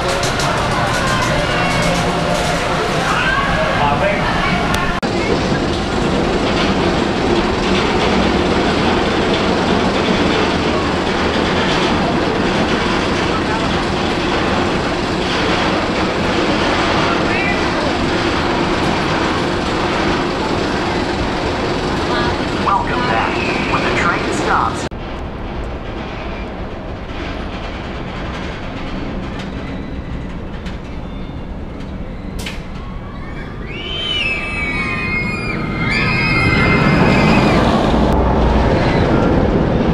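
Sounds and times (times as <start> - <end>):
roller coaster chain lift rattle: 0.0 - 39.9.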